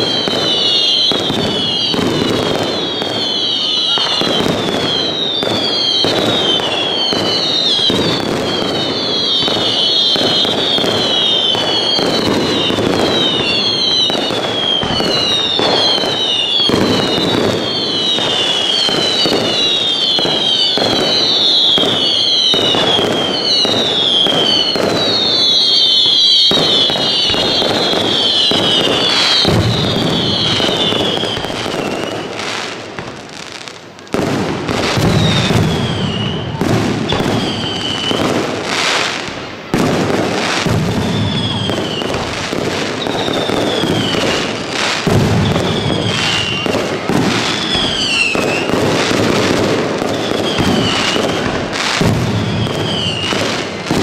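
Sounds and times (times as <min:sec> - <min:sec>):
whistling firework shells: 0:00.0 - 0:54.0.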